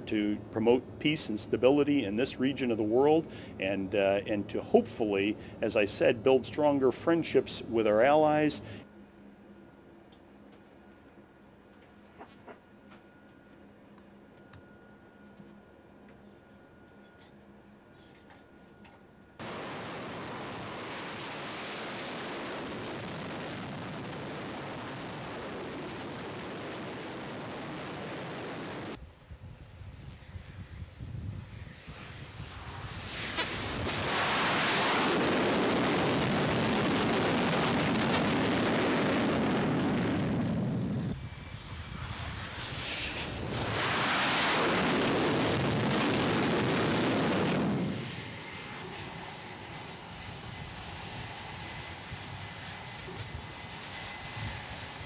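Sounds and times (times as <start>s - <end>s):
jet engines roaring: 0.0s - 8.9s, 19.4s - 55.0s
high turbine whine: 0.0s - 55.0s.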